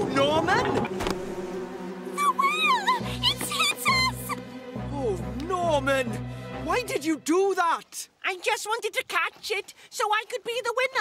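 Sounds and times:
person crying out: 2.2s - 4.4s.

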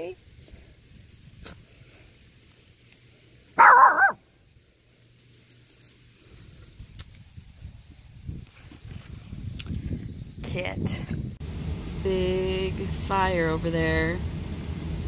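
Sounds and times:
dog barking: 3.6s - 4.2s.

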